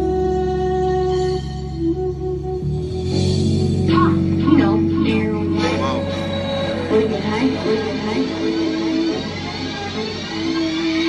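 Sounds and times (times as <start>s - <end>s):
hip-hop track: 2.9s - 11.0s.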